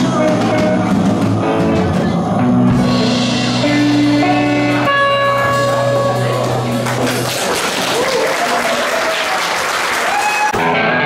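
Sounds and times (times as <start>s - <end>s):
rock band chord ringing: 0.0s - 7.2s
guitar playing: 0.0s - 7.8s, 10.5s - 11.0s
audience applauding and cheering: 5.9s - 11.0s.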